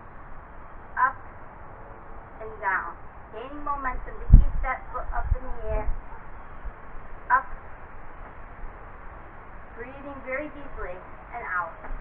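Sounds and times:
outdoor hiss with low rumble: 0:00.0 - 0:12.0.

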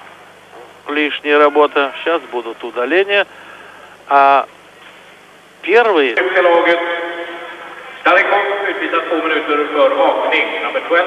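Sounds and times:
man commentating: 0:00.9 - 0:03.3, 0:04.1 - 0:04.5, 0:05.6 - 0:11.0.

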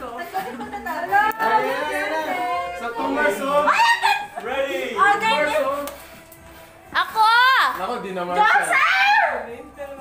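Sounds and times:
group of voices: 0:00.0 - 0:07.8
music: 0:00.0 - 0:10.0.

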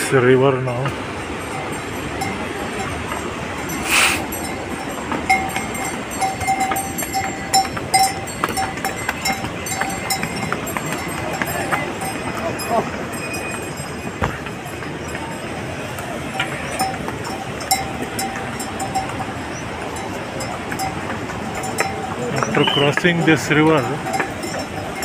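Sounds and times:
harness bell ringing: 0:00.0 - 0:25.0
river rushing: 0:00.0 - 0:25.0.

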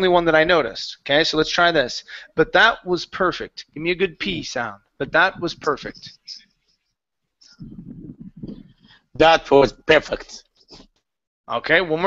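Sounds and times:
person speaking over video call: 0:00.0 - 0:12.0.

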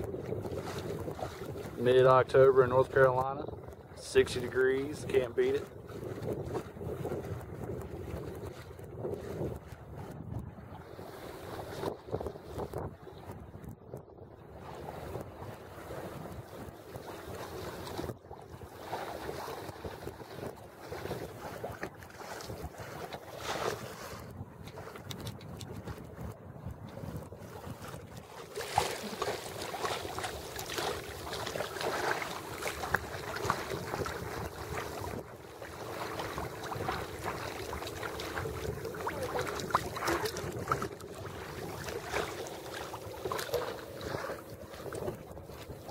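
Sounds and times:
water washing along hull: 0:00.0 - 0:45.9
wind on microphone: 0:00.0 - 0:45.9.

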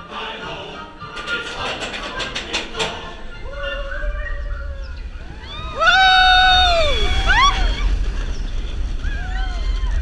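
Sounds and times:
roller coaster rumbling: 0:00.2 - 0:10.0
riders whooping: 0:03.4 - 0:10.0.

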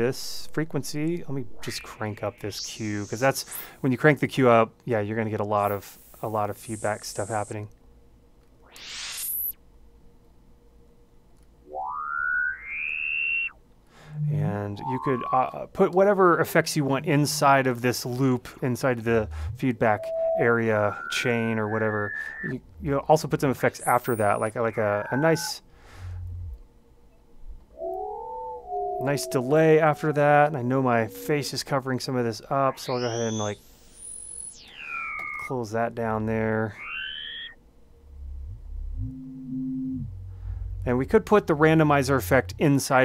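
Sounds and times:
whistling feedback tone gliding: 0:00.0 - 0:03.8, 0:05.6 - 0:07.6, 0:08.6 - 0:09.6, 0:11.7 - 0:26.6, 0:27.8 - 0:37.6
hissy sweep rising: 0:01.4 - 0:03.8, 0:08.7 - 0:09.5, 0:19.1 - 0:22.6, 0:23.7 - 0:25.6
low rumble: 0:18.8 - 0:20.9, 0:26.0 - 0:26.6, 0:38.0 - 0:39.2, 0:40.0 - 0:42.6.

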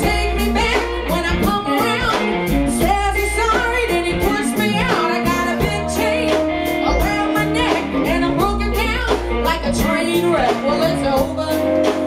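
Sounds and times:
bass and drums: 0:00.0 - 0:12.0
woman singing blues: 0:00.0 - 0:12.0.

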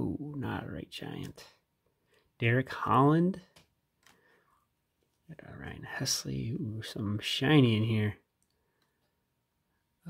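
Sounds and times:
man speaking: 0:00.0 - 0:01.7, 0:02.4 - 0:03.6, 0:05.2 - 0:08.3.

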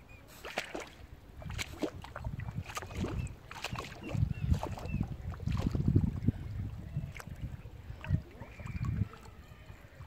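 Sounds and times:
lake water lapping: 0:00.0 - 0:10.0
duck feeding splashes: 0:00.3 - 0:10.0.

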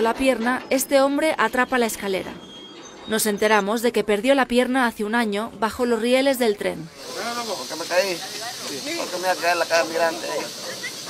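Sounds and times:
people talking: 0:00.0 - 0:02.4, 0:03.1 - 0:11.0
steady background hiss: 0:06.8 - 0:11.0.

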